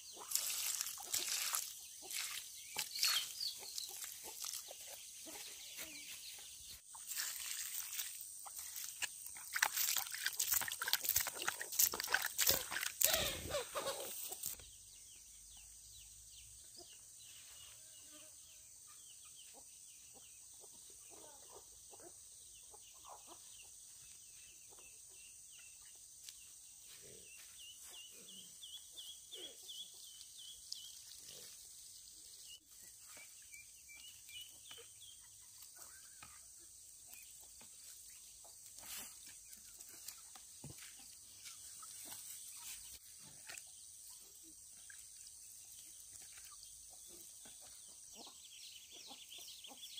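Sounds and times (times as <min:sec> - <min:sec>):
insect hiss: 0:05.6 - 0:14.8.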